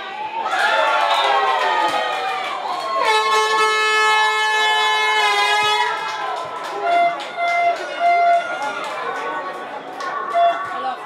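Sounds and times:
air horn blast: 3.0 - 6.0, 6.8 - 8.6.

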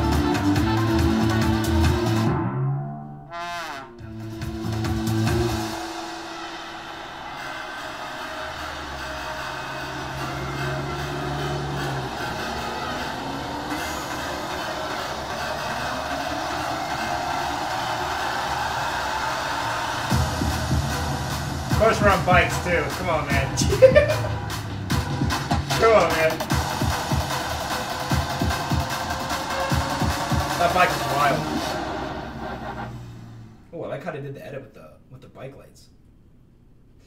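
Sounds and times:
low sustained music phrase: 4.0 - 21.8
rising sweeps: 4.1 - 33.8
deep bass hit: 20.0 - 27.5.

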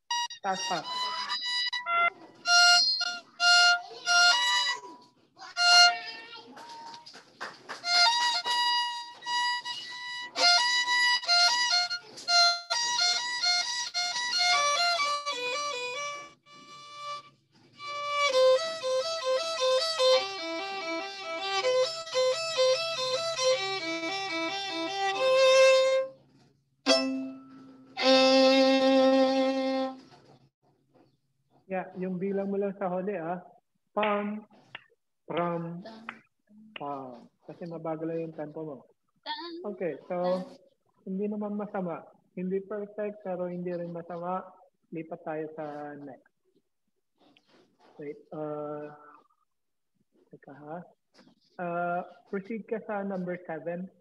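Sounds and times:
violin quick bowed notes: 0.1 - 4.7, 26.9 - 30.1.

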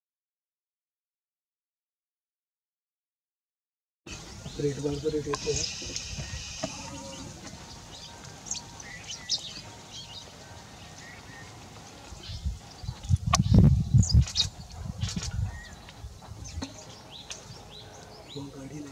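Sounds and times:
high bird chirps: 4.1 - 18.4.

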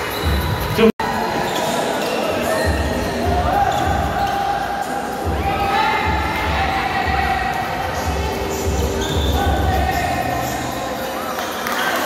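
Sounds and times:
voices calling: 0.0 - 12.0.

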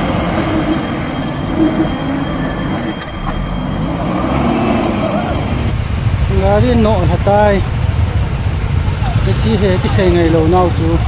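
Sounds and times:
vehicle engines idling: 0.0 - 11.0.

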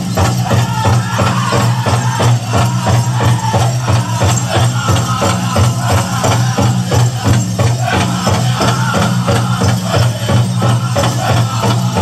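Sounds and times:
drum group singing: 0.0 - 12.0
jingling bells: 0.0 - 12.0
steady drumbeat: 0.0 - 12.0.

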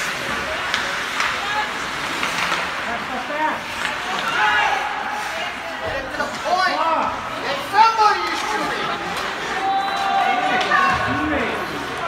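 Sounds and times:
spectators chatting: 0.0 - 12.0.

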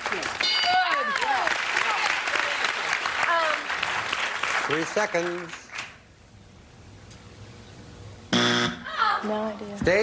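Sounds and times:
game show buzzer: 8.3 - 8.9.

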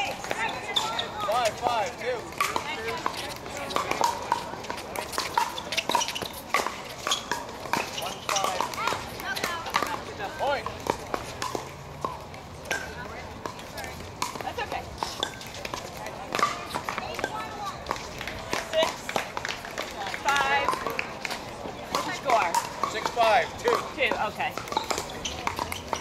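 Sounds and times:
balls popping off paddles: 0.0 - 26.0.

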